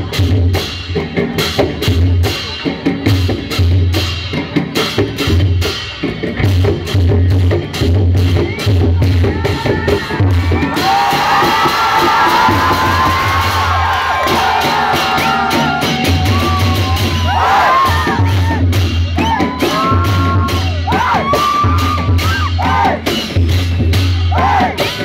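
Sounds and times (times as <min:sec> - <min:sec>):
barrel drums beating: 0:00.3 - 0:25.0
crowd cheering and whooping: 0:09.6 - 0:23.0.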